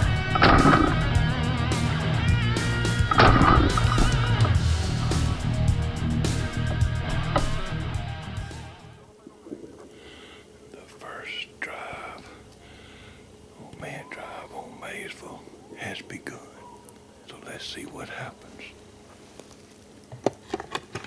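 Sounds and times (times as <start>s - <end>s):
sharp clicks: 0.0s - 1.2s, 2.9s - 4.6s, 6.6s - 7.8s
man whispering: 10.7s - 12.6s, 13.5s - 18.8s.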